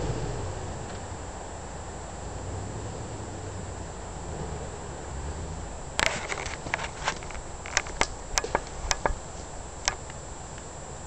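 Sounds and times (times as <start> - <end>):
distant engine running low: 0.0 - 11.0
sharp clicks and cracks: 5.9 - 10.7.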